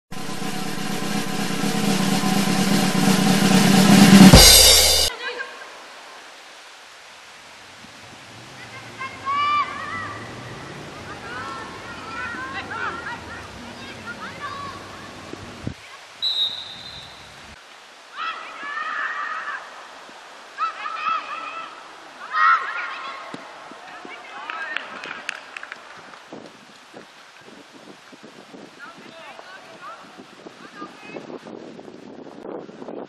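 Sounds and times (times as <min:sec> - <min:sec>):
impact hit: 0:00.1 - 0:05.1
rising noise sweep: 0:00.1 - 0:05.1
sustained low tone: 0:00.1 - 0:05.1
referee's whistle blast: 0:16.2 - 0:17.2.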